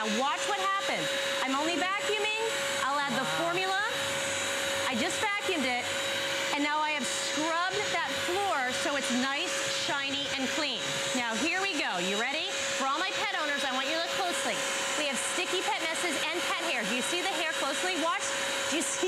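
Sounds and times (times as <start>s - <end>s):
wet vacuum whining: 0.0s - 19.0s.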